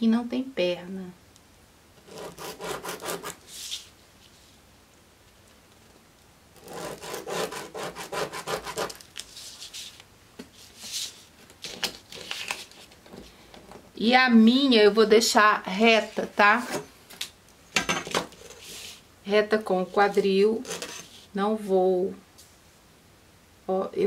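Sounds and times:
marker scratching on paper: 0:02.0 - 0:03.9, 0:06.6 - 0:09.8.

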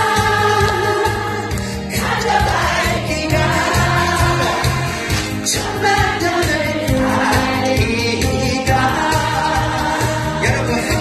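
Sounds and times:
backing music: 0:00.0 - 0:11.0
crowd of women singing: 0:00.0 - 0:11.0.

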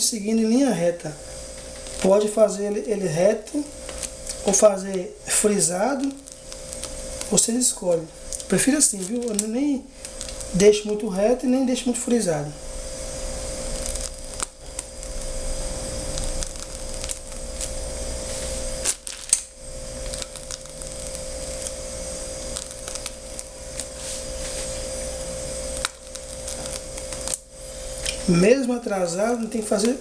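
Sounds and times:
machine hum: 0:00.0 - 0:30.0.

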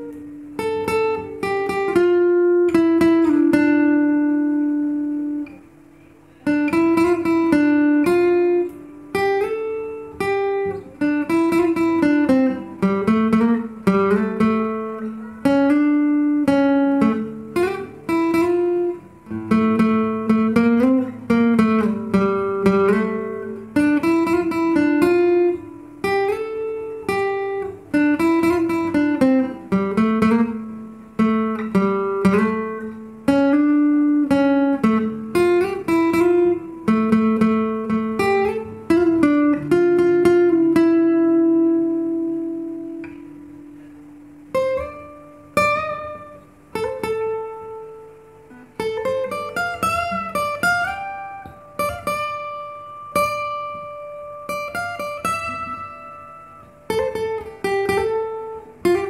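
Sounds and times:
fingerstyle acoustic guitar: 0:00.0 - 0:59.0.

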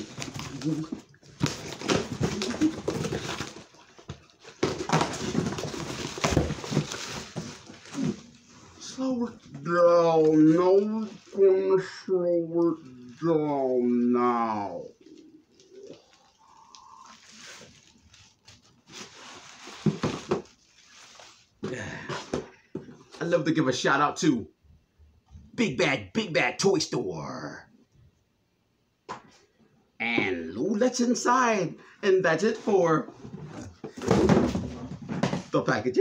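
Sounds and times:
plastic packing crinkling: 0:00.0 - 0:08.4, 0:14.8 - 0:21.6
cardboard box thumps: 0:01.4 - 0:08.3, 0:33.8 - 0:35.5.

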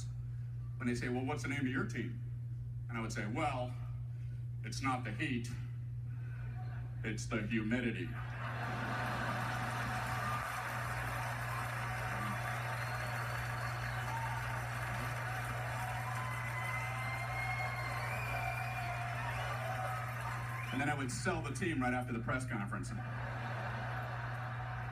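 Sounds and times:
steady low hum: 0:00.0 - 0:24.9
audience laughing: 0:08.2 - 0:12.7, 0:23.0 - 0:24.9
audience applauding: 0:08.2 - 0:21.0, 0:23.0 - 0:24.9.

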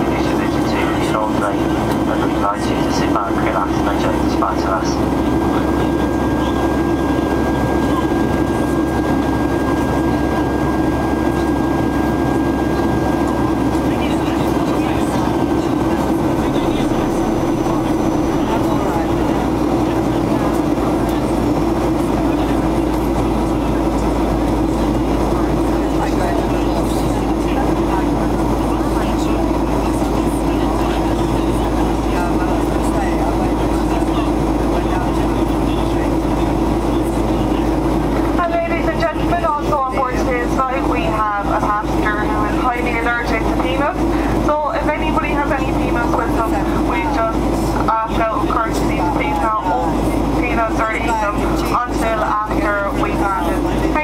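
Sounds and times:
airplane cabin engine drone: 0:00.0 - 0:54.0
low hum: 0:00.0 - 0:54.0
person speaking: 0:12.8 - 0:28.2.

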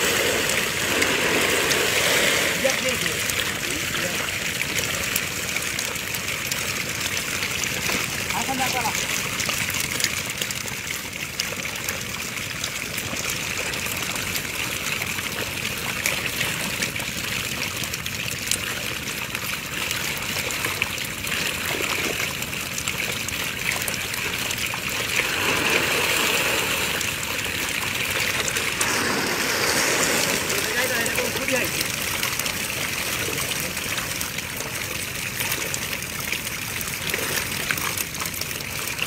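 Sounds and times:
water sloshing around wading men: 0:00.0 - 0:39.0
small quick splashes: 0:24.8 - 0:32.2.

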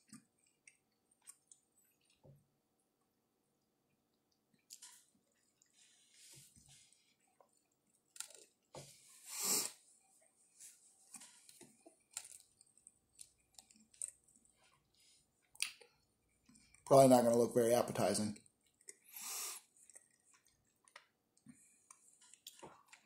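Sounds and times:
wet chewing: 0:00.0 - 0:02.2, 0:06.8 - 0:08.7, 0:11.0 - 0:16.9, 0:18.4 - 0:23.0.

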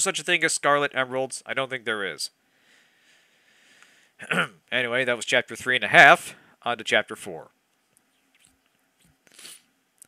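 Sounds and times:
mouth noise near microphone: 0:04.2 - 0:10.0.

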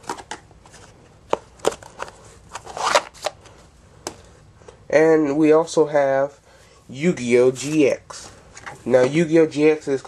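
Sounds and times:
cards rustling and sliding: 0:00.0 - 0:04.2.

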